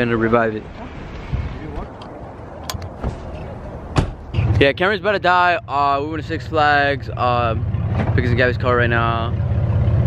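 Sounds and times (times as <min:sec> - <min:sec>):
outdoor ambient noise: 0:00.0 - 0:10.0.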